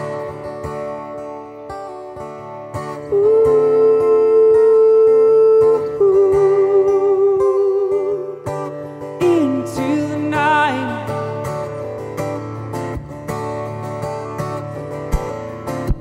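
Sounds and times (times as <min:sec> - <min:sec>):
acoustic guitar picked: 0:00.0 - 0:16.0
wordless singing with held notes: 0:03.1 - 0:11.6.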